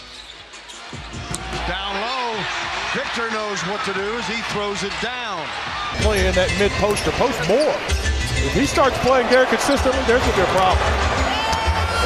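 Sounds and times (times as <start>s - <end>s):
arena crowd noise: 0.5s - 12.0s.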